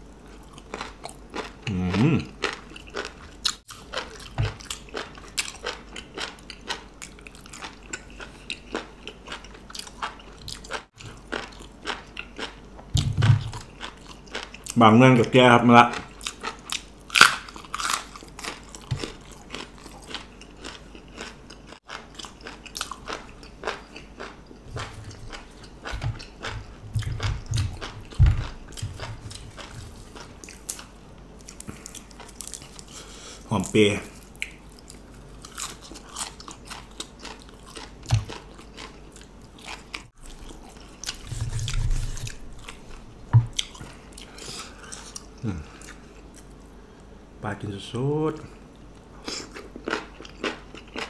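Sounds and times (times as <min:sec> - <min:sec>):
person chewing crunchy vegetables: 0:00.0 - 0:47.2, 0:48.7 - 0:51.0.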